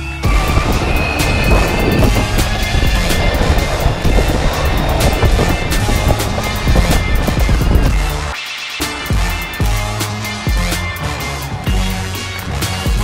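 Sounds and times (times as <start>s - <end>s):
music with steady beat: 0.0s - 13.0s
longboard wheels rolling on asphalt: 0.2s - 8.4s.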